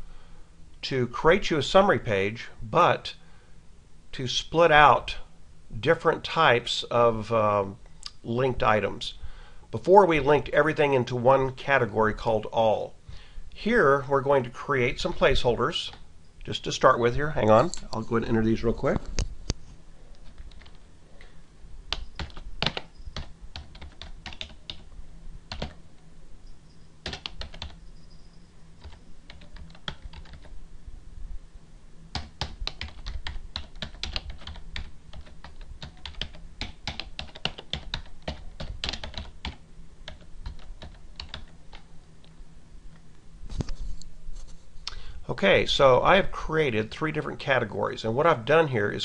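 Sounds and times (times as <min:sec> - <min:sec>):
computer keyboard typing: 0:20.1 - 0:20.8, 0:21.9 - 0:24.9, 0:25.5 - 0:25.8, 0:27.0 - 0:27.8, 0:28.8 - 0:30.5, 0:32.1 - 0:41.9.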